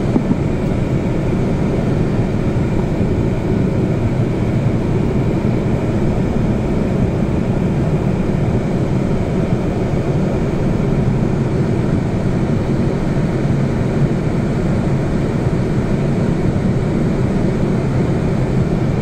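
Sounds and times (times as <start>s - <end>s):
bus engine and road rumble: 0.0s - 19.0s.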